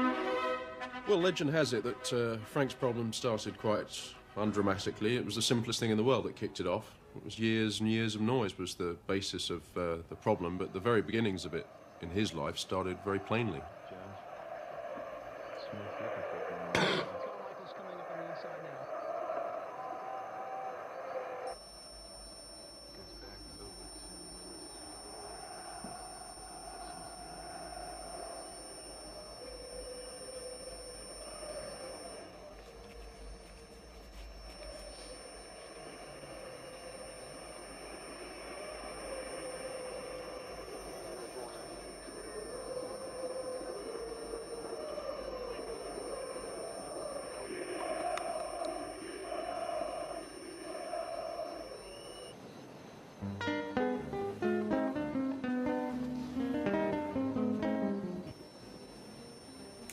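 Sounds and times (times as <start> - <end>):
muffled television football broadcast: 0.1 - 21.5, 22.4 - 52.3
high-pitched ringing tone: 9.7 - 19.5, 21.5 - 59.9.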